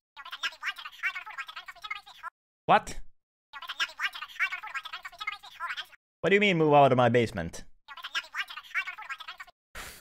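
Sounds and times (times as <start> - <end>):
muffled garbled voice: 0.2 - 2.8, 3.6 - 6.0, 7.9 - 9.5.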